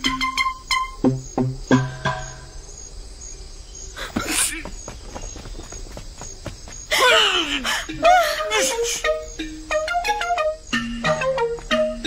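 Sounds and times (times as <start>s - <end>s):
quick light footsteps: 4.0s - 7.6s.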